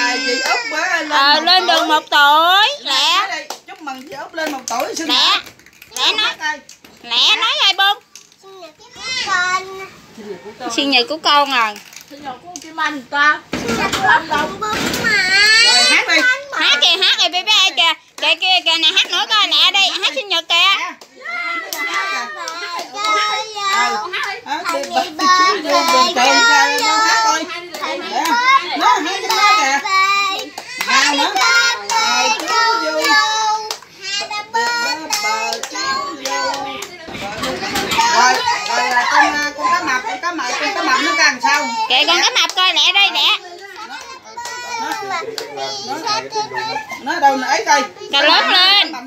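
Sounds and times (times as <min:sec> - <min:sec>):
young children's voices: 0:08.4 - 0:10.1, 0:14.4 - 0:16.7
boy singing: 0:21.6 - 0:39.8.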